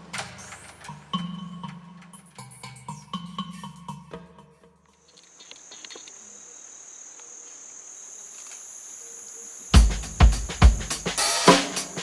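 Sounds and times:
insect chorus: 0:00.0 - 0:12.0
drum kit heavy beats: 0:09.8 - 0:12.0.

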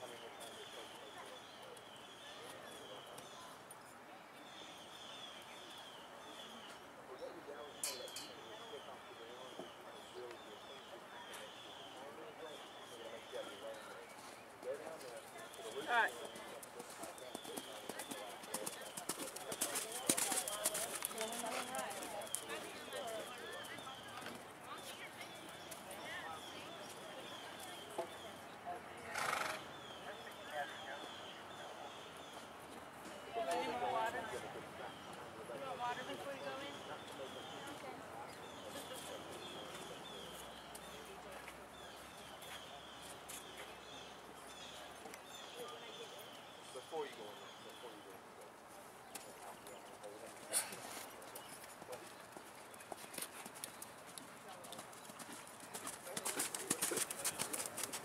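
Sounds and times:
horse whinny: 0:29.1 - 0:29.6.

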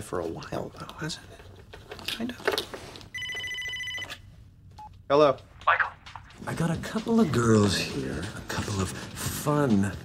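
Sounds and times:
mobile phone ringing: 0:03.1 - 0:04.4.

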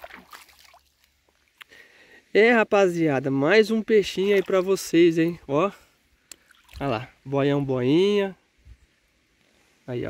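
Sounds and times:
pond water splashing: 0:00.0 - 0:02.2, 0:03.6 - 0:07.2.

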